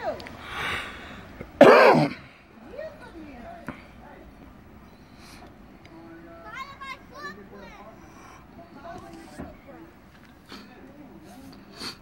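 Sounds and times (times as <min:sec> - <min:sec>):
person coughing: 0:01.6 - 0:02.2.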